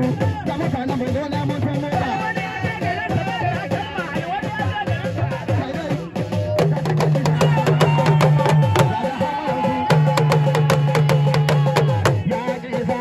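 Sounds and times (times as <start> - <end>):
drum ensemble playing rapid rhythms: 0.0 - 13.0.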